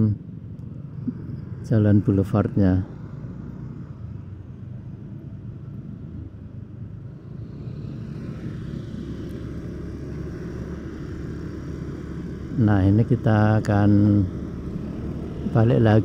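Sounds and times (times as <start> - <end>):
vehicle engine and road rumble: 0.0 - 16.0.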